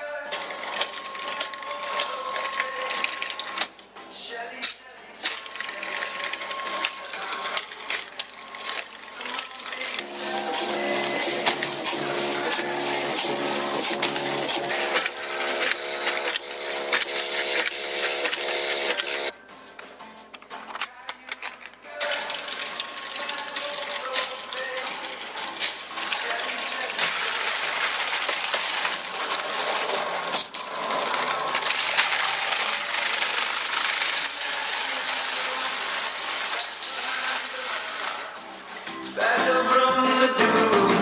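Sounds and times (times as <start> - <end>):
background music: 0.0 - 41.0
knitting machine clattering: 5.2 - 19.3, 21.5 - 38.3.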